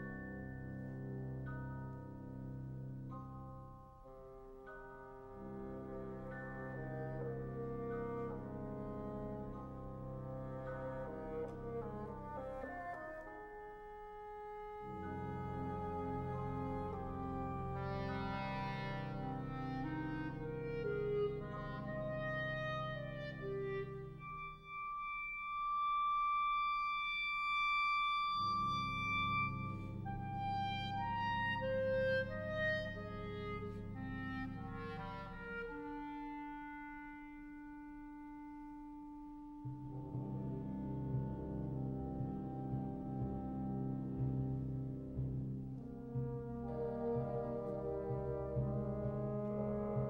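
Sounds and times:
wind ensemble brass chords: 0.0 - 50.0.

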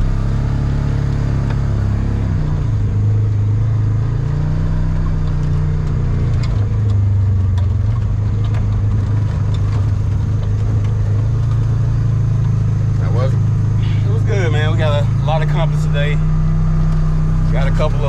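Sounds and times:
utility vehicle engine running: 0.0 - 18.0.

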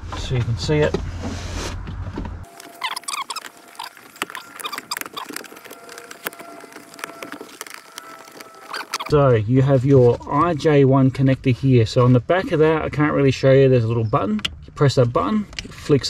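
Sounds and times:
hands rustling among wiring: 2.4 - 10.4.

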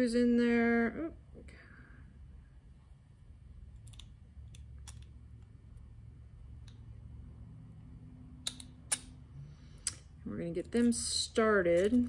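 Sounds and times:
small metal parts clicking: 3.8 - 5.2.

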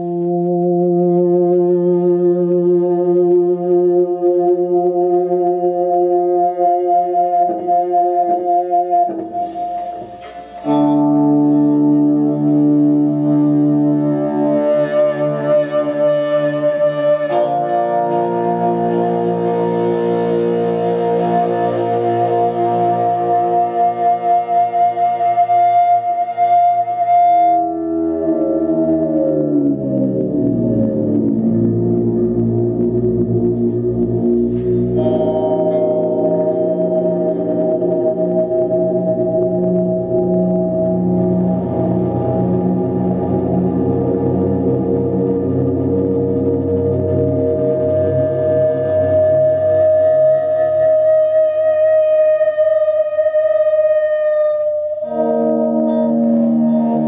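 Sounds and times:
overdriven electric guitar feedback: 0.0 - 57.0.

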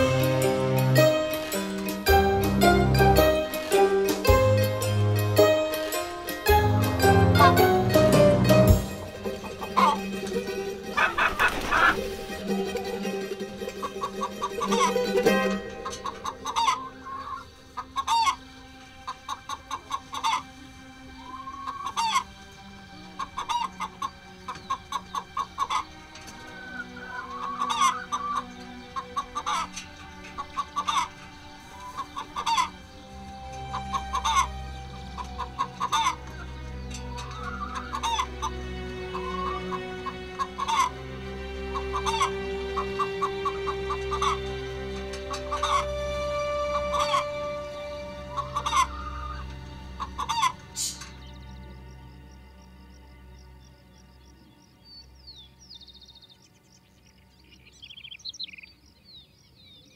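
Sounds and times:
hens clucking: 0.0 - 53.0.

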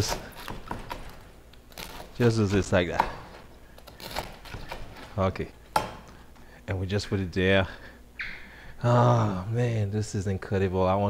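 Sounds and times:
knife slicing crusty bread: 0.0 - 6.0.

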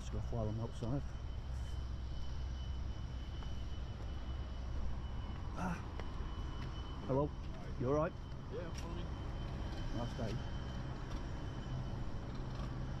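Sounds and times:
low city ambience rumble: 0.0 - 13.0.

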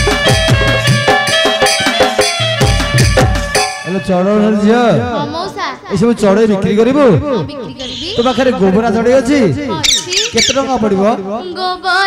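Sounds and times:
girl speaking stage dialogue: 5.0 - 6.4, 7.1 - 8.6, 9.4 - 10.4, 11.2 - 12.0
girl squealing: 7.4 - 8.5.

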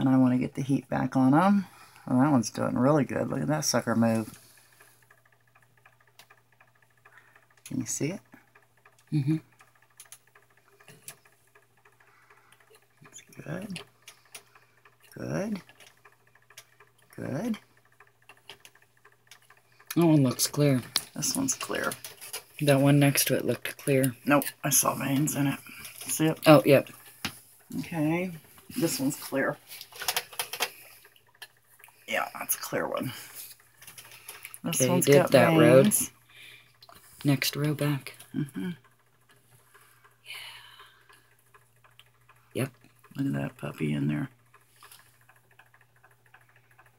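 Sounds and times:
low steady hum: 0.0 - 46.9.

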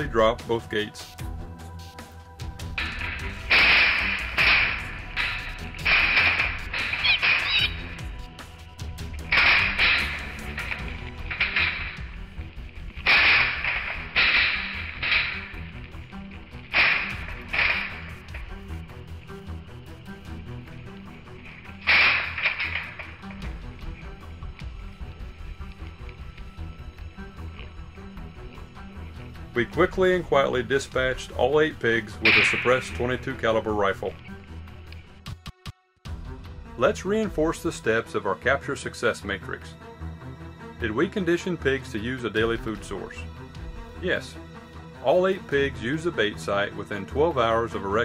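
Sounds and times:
background music: 0.0 - 48.0
hogs squealing: 6.8 - 8.0.

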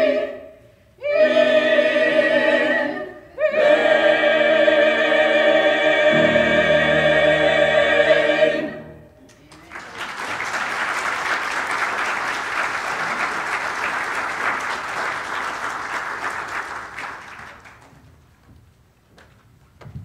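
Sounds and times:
choir singing: 0.0 - 9.2
audience applauding: 9.4 - 18.0.

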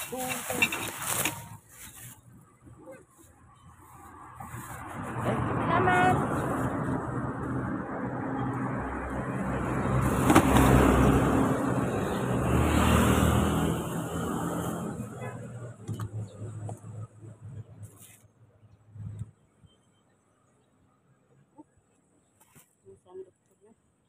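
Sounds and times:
vehicle passing by: 4.0 - 15.8.

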